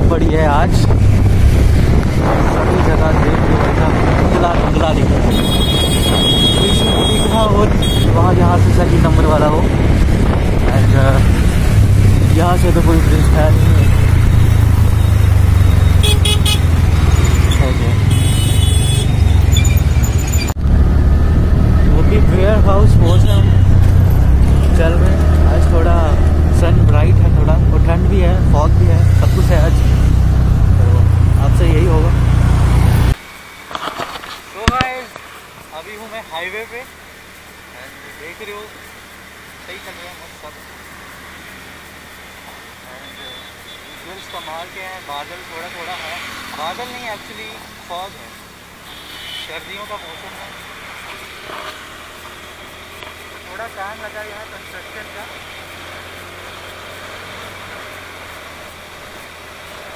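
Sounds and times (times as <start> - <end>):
road traffic rumble: 0.0 - 59.9
voices: 2.2 - 9.8, 10.6 - 19.7, 21.8 - 32.5, 34.4 - 58.5
vehicle horns: 5.2 - 8.4, 13.7 - 20.4, 23.0 - 24.0, 42.9 - 44.8, 48.8 - 52.9.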